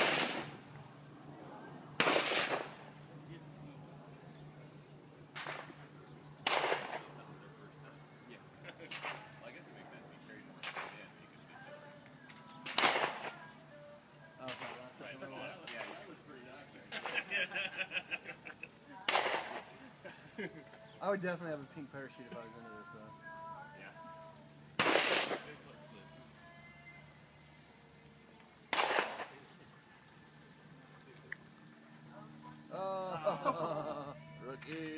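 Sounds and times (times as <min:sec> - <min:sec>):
distant gunshots: 0:00.0 - 0:00.6, 0:02.0 - 0:03.0, 0:05.3 - 0:05.8, 0:06.4 - 0:07.2, 0:08.8 - 0:09.3, 0:10.6 - 0:11.1, 0:12.6 - 0:13.5, 0:14.4 - 0:14.9, 0:16.9 - 0:17.3, 0:19.1 - 0:19.8, 0:24.8 - 0:25.6, 0:28.7 - 0:29.4.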